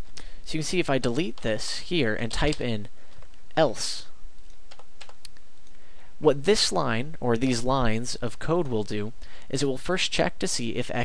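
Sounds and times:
steady background hiss: 0.0s - 11.0s
computer keyboard keystrokes: 4.7s - 5.3s.

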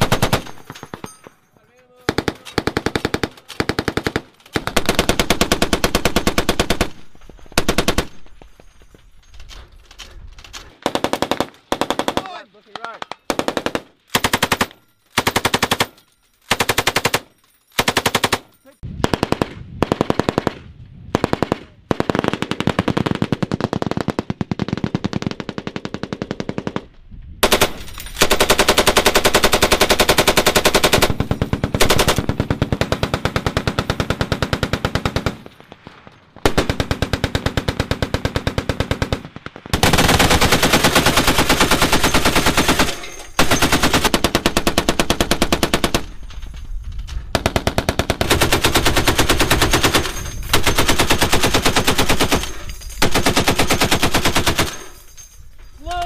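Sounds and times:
machine guns firing bursts: 0.0s - 1.1s, 2.0s - 8.2s, 10.8s - 12.5s, 13.2s - 35.5s, 36.4s - 46.3s, 47.3s - 55.3s.

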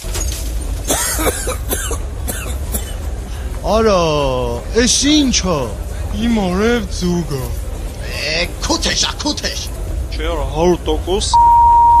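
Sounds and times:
person coughing: 0.9s - 3.0s.

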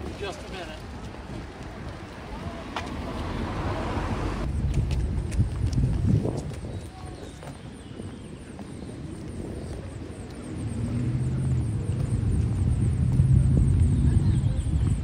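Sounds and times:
street traffic: 0.0s - 15.0s
engine low rumble: 8.4s - 15.0s.

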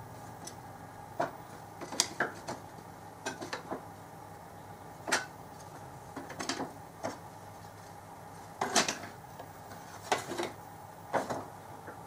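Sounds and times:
low shop hum: 0.0s - 12.0s.

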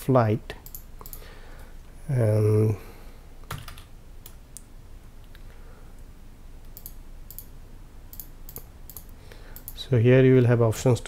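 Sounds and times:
computer mouse clicks: 0.6s - 1.3s, 6.6s - 7.5s, 8.1s - 9.8s.

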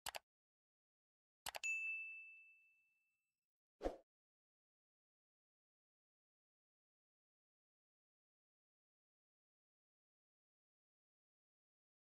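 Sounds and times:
quick clicks: 0.0s - 0.2s
faint high metallic ding: 1.6s - 3.0s.

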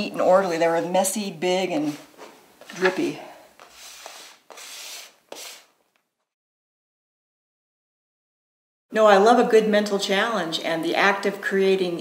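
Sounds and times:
painting tool rubbing on paper: 3.6s - 5.8s.

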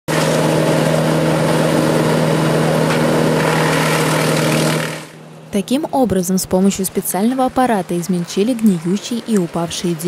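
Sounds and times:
branches being shredded: 0.1s - 5.1s
wood chipper running: 0.1s - 5.5s.

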